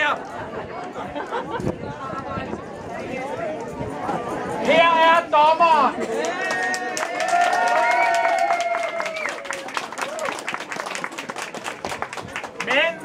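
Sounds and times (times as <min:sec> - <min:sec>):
crowd applauding: 0:06.0 - 0:13.0
voices cheering: 0:06.1 - 0:11.2.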